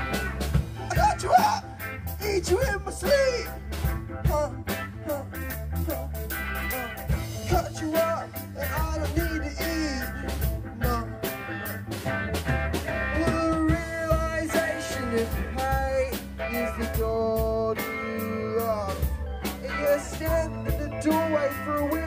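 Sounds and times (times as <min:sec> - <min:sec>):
bass guitar: 0:00.0 - 0:22.0
drum kit steady beat: 0:00.0 - 0:22.0
electric guitar: 0:00.0 - 0:22.0
person singing: 0:00.8 - 0:03.6, 0:04.2 - 0:06.1, 0:06.7 - 0:11.4, 0:13.1 - 0:22.0.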